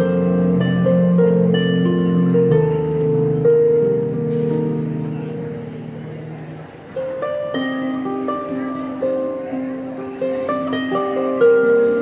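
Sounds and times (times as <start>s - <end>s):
harp plucked notes: 0.0s - 12.0s.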